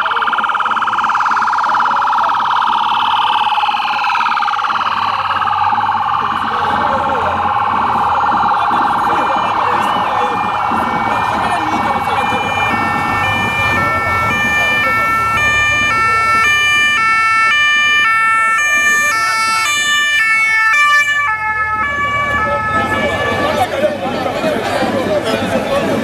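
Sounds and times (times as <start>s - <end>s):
siren warbling and two-tone: 0.0s - 23.8s
street crowd noise: 0.0s - 26.0s.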